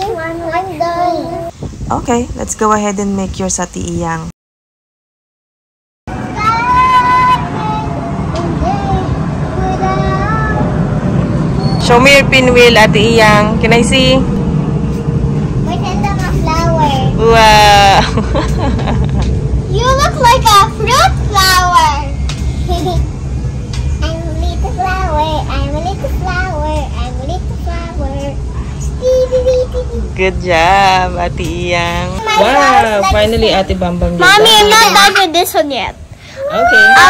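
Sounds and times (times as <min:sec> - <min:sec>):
child singing: 0:00.0 - 0:01.5, 0:06.3 - 0:10.8, 0:24.0 - 0:30.1
low outdoor rumble: 0:00.0 - 0:04.3, 0:06.1 - 0:37.0.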